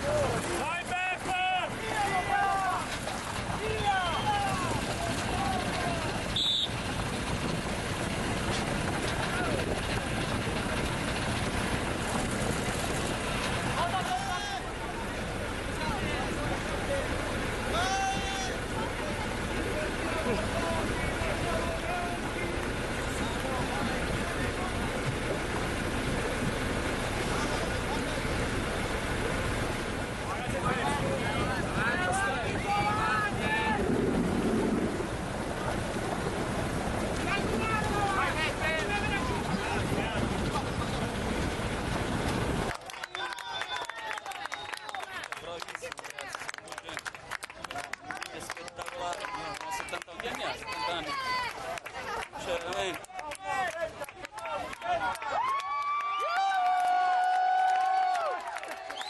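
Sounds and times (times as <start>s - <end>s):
water noise: 0.0s - 45.8s
boat motor rumble: 0.0s - 55.4s
wind buffeting microphone: 2.2s - 14.1s, 14.8s - 42.8s
people calling out: 17.7s - 22.3s
wind noise: 30.3s - 42.7s.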